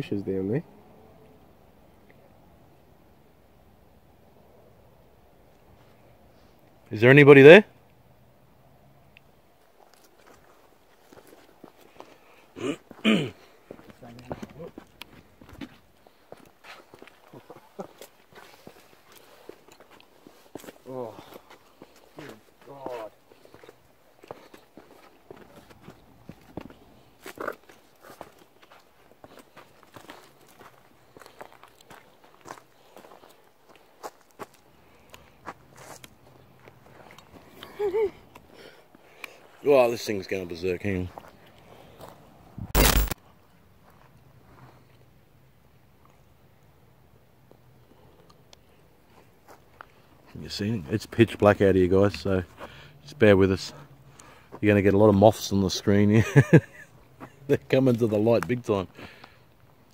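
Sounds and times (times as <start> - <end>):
footsteps of people walking: 9.7 - 37.7.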